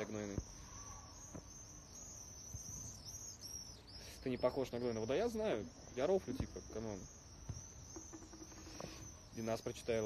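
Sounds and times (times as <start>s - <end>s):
high-pitched chirping: 0.0s - 10.0s
low background noise: 0.0s - 10.0s.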